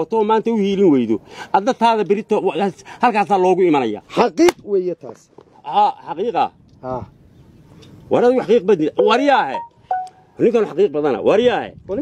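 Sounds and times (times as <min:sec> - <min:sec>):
man talking: 0:08.2 - 0:11.5
short electronic beeps: 0:09.0 - 0:10.4.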